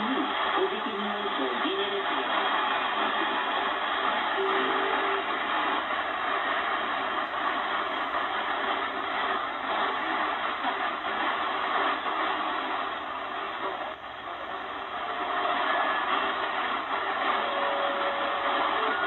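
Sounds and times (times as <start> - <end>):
faint radio station: 0.0 - 19.0
shortwave radio static: 0.0 - 19.0.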